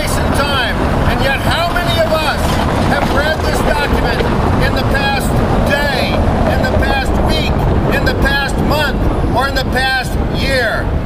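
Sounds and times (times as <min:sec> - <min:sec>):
man speaking: 0:00.0 - 0:10.9
city traffic rumble: 0:00.0 - 0:11.0
wind buffeting microphone: 0:00.0 - 0:11.0.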